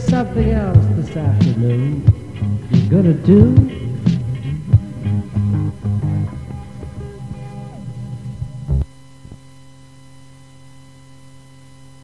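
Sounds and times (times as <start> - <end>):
rock-reggae song final hit: 0.0 - 8.9
electrical mains hum: 0.0 - 12.0.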